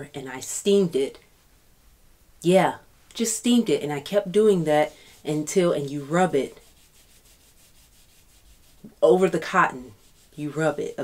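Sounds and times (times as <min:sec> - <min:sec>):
rubbing leather cardholder: 0:04.3 - 0:10.6.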